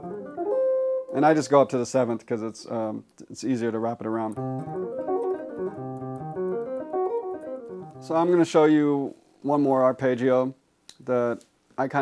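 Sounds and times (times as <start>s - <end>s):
electric guitar arpeggio: 0.0s - 1.2s, 4.3s - 8.3s.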